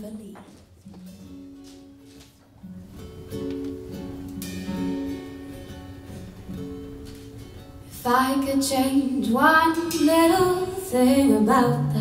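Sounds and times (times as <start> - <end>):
acoustic guitar picking slowly: 0.8 - 12.0.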